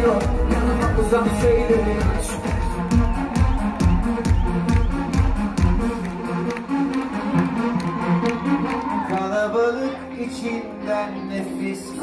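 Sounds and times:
kick drum steady beat: 0:00.2 - 0:06.0.

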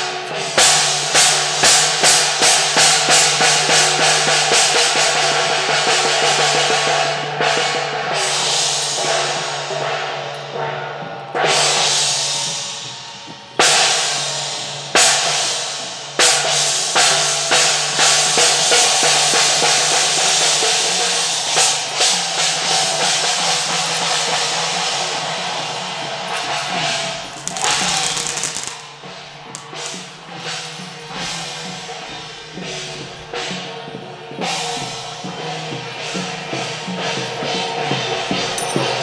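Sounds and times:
gong and drum percussion: 0:00.0 - 0:39.0.

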